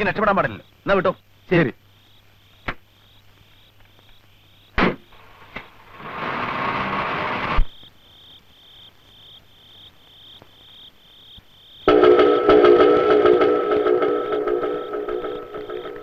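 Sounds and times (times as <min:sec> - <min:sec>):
crickets chirping: 0:00.0 - 0:06.0, 0:06.7 - 0:16.0
sustained held tones: 0:11.9 - 0:16.0.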